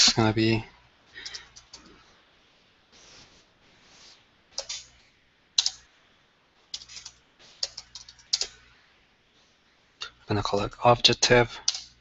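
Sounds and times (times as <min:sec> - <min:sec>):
typing on computer keyboard: 0:05.6 - 0:05.8, 0:06.8 - 0:08.5, 0:11.6 - 0:11.9.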